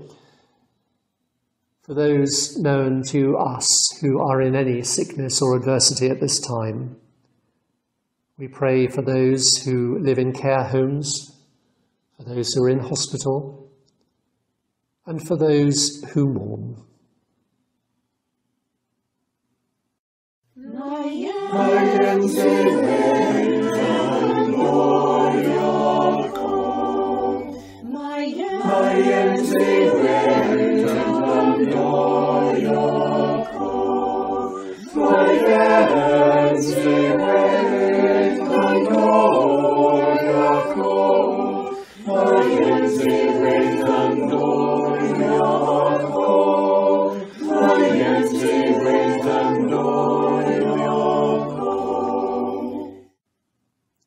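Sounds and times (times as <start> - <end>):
church choir singing: 0.0 - 0.3, 20.6 - 53.1
singers breathing: 0.0 - 0.7, 27.5 - 27.9, 34.5 - 35.0, 41.7 - 42.1.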